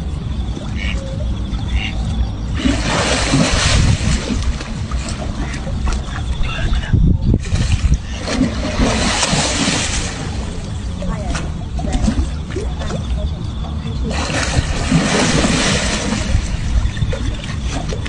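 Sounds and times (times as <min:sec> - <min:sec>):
steady low rumble: 0:00.0 - 0:18.0
water splashing: 0:00.0 - 0:18.0.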